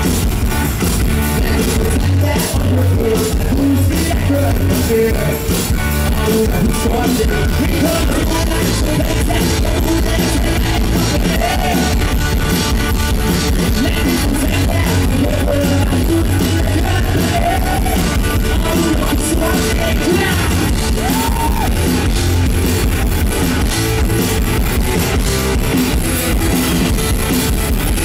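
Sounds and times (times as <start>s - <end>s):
live rock band playing: 0.0s - 28.0s
person singing: 1.3s - 12.2s, 13.6s - 22.0s.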